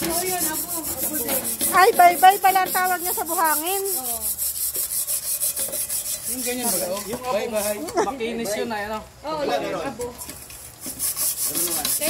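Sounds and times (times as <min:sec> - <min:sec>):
scrubbing metal pot: 0:00.0 - 0:07.9, 0:10.2 - 0:12.0.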